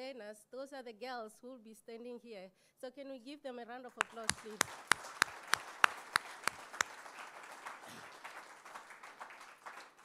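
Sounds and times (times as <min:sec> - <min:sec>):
loud nearby clapping: 0:03.9 - 0:10.0
crowd applauding: 0:04.0 - 0:10.0.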